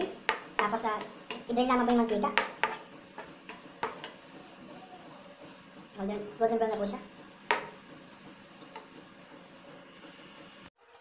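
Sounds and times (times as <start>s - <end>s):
faint sizzle: 0.0s - 11.0s
spatula clicking against pan: 3.5s - 4.2s.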